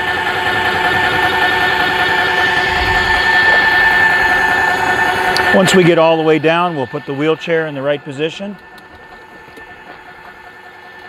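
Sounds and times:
electric lift motor whining: 0.0 - 11.0.

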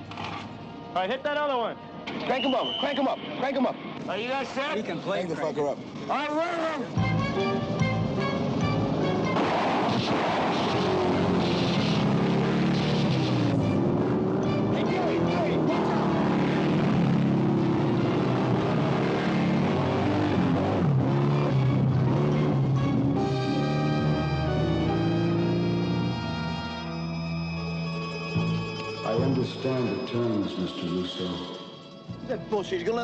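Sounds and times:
film score music: 0.0 - 33.0
noisy action sound effects: 9.2 - 23.7.

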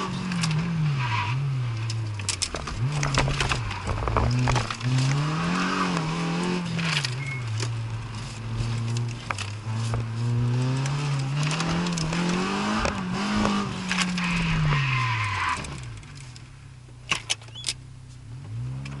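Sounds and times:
car engine revving: 0.0 - 16.4, 18.2 - 19.0.

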